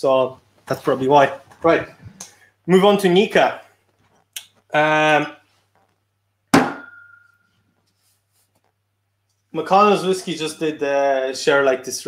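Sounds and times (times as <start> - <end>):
glassy ring: 6.7 - 7.6.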